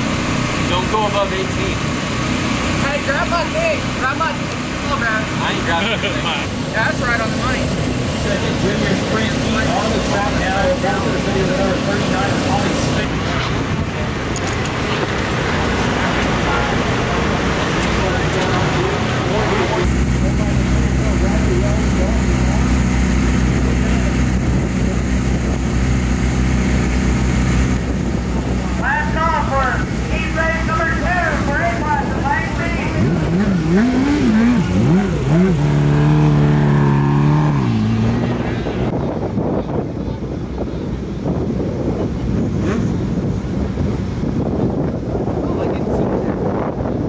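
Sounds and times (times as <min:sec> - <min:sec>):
race car engines humming: 0:00.0 - 0:47.0
engine revving in blips: 0:32.7 - 0:39.0.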